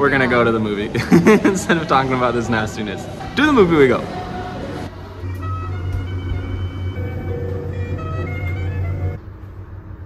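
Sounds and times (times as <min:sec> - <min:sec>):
elevator hum: 0:00.5 - 0:10.0.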